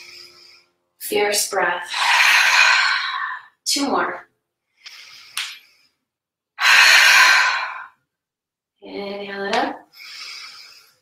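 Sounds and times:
woman forcefully exhaling: 0:06.6 - 0:08.0.

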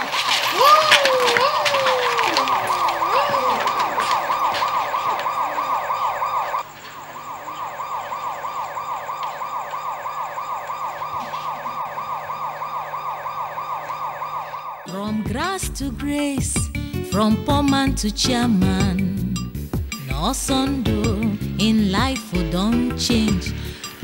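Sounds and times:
police siren yelping: 0:00.2 - 0:15.5.

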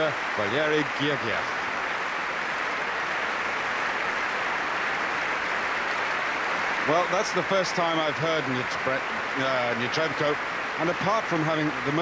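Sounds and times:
large audience applauding: 0:00.0 - 0:12.0.

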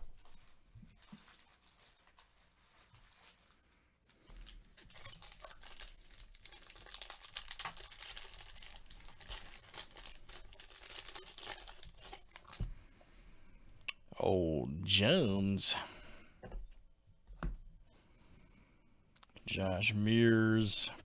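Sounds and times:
foil wrapper crinkling: 0:00.1 - 0:12.7.

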